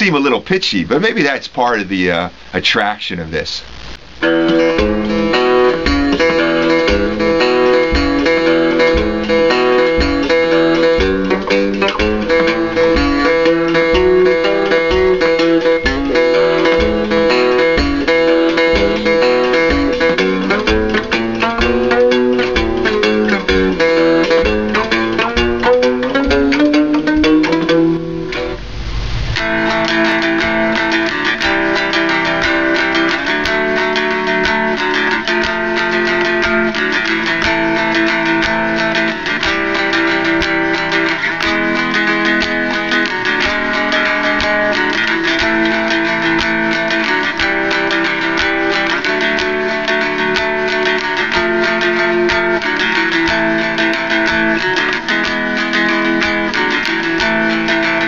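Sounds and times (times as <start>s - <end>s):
fretless guitar blues riff: 0.0s - 58.0s
guitar strummed in chords: 3.7s - 58.0s
short rush of noise: 28.6s - 29.5s.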